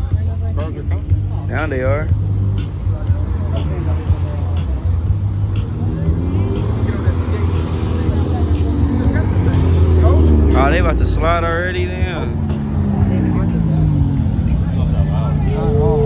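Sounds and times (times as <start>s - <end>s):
cars driving slowly past: 0.0s - 16.0s
car engine passing by: 2.0s - 16.0s.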